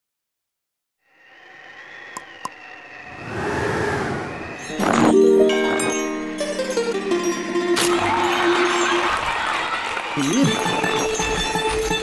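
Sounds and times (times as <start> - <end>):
rising whoosh: 1.1 - 6.4.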